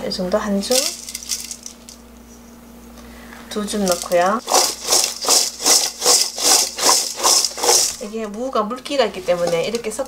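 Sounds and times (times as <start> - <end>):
faint steady hum: 0.0 - 10.0
salt grains pattering: 3.9 - 8.1.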